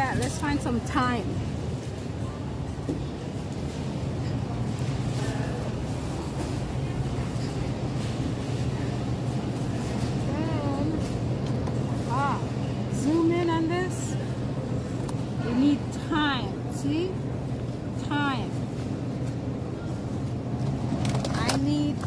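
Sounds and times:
refrigerated cases humming: 0.0 - 22.0.

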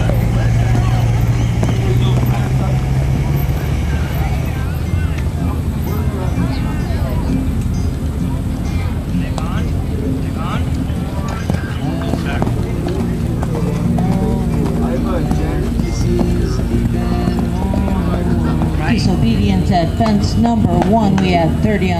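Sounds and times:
horse hoofbeats on sand: 0.0 - 6.0, 10.6 - 21.9
background music: 0.0 - 21.9
low outdoor noise: 0.0 - 21.9
people talking: 0.0 - 21.9.

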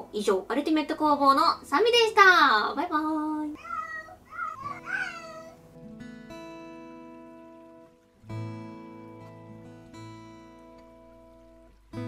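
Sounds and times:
plucked guitar music: 4.2 - 12.0.

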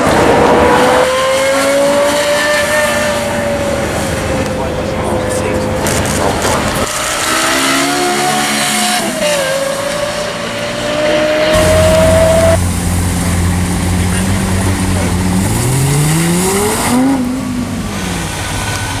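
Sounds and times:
car engine revving: 0.0 - 19.0.

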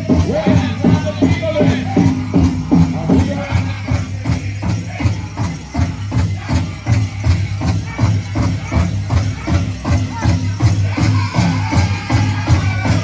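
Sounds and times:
big drum beating steadily: 0.0 - 13.0
group singing: 0.2 - 9.6, 10.2 - 13.0.

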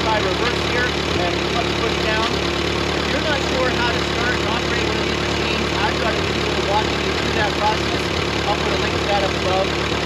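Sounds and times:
man talking: 0.0 - 2.4, 3.0 - 9.8
tractor engine idling: 0.0 - 10.0.

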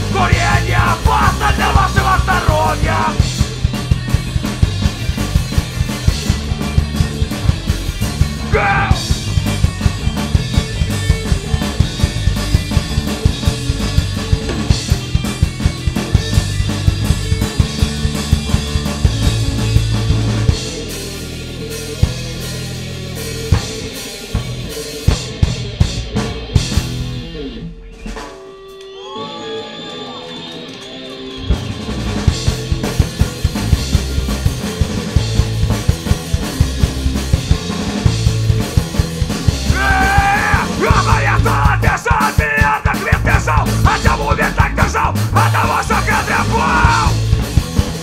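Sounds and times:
drums hitting steadily: 0.0 - 28.5, 31.9 - 48.0
punk band playing: 0.0 - 48.0.

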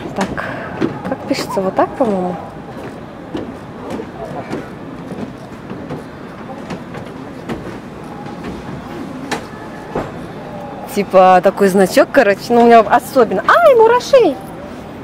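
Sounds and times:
background chatter of voices: 0.0 - 15.0
outdoor noise: 0.0 - 15.0.

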